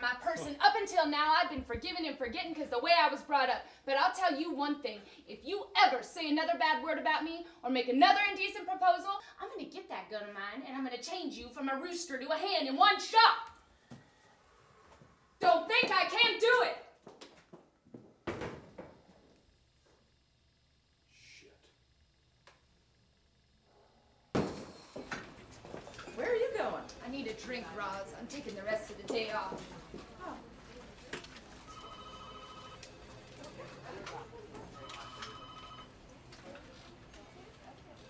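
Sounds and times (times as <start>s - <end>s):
door shutting thump: 18.2s - 18.9s
telephone ringing: 31.5s - 33.4s, 34.6s - 36.2s.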